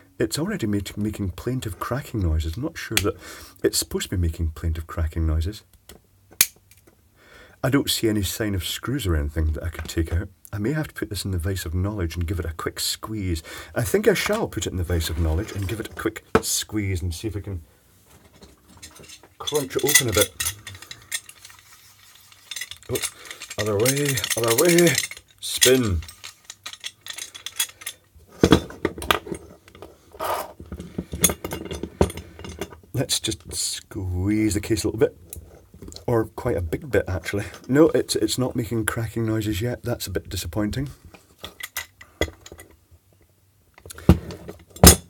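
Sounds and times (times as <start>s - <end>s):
metal vice clinks and knocks: 18.4s - 29.8s, 30.7s - 32.8s, 44.3s - 45.0s.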